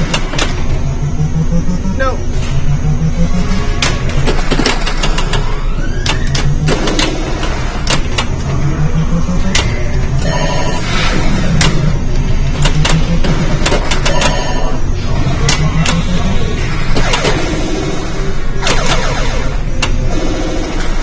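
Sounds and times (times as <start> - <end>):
pinball flippers and ball clacking: 0.0 - 0.8, 3.3 - 10.5, 11.5 - 21.0
electronic beeping effects: 0.0 - 20.8
low arcade hum: 0.0 - 21.0.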